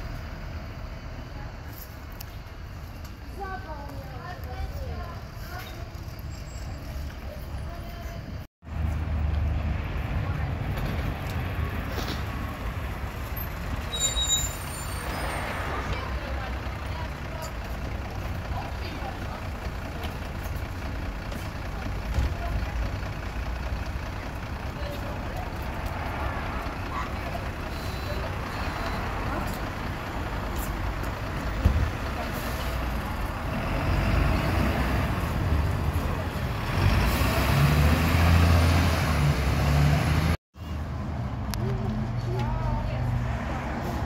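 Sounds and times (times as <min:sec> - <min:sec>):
bus diesel engines idling: 0:00.0 - 0:40.9
brake squeal: 0:05.4 - 0:08.3, 0:13.2 - 0:16.1, 0:27.0 - 0:31.0.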